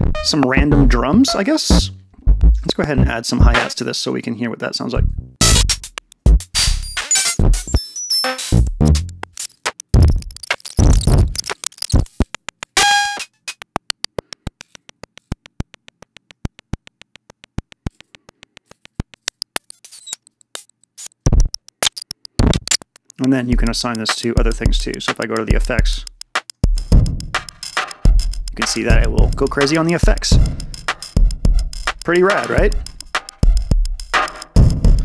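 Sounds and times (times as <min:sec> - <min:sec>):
drum machine beat: 0:00.0 - 0:03.8, 0:05.4 - 0:19.7, 0:21.2 - 0:35.0
hi-hat ticks: 0:05.4 - 0:35.0.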